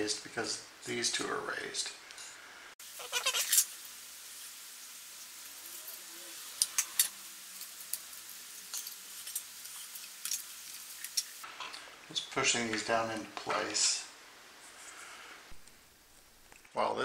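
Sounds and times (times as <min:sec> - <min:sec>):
steady hiss: 0:00.0 - 0:17.0.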